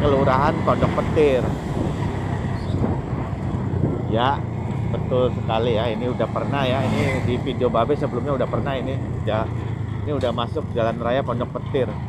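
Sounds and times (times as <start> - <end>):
road noise: 0.0 - 12.0
vehicle engine rumble: 0.0 - 12.0.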